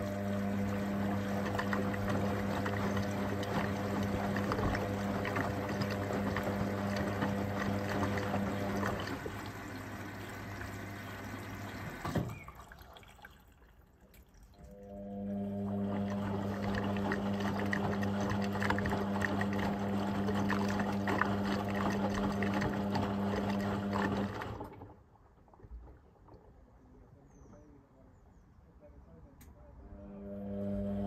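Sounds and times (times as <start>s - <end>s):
washing machine tumbling: 0.0s - 12.8s, 14.9s - 25.0s
washing machine motor hum: 0.0s - 12.9s, 14.6s - 25.0s, 29.9s - 31.0s
water and laundry sloshing: 0.0s - 26.7s.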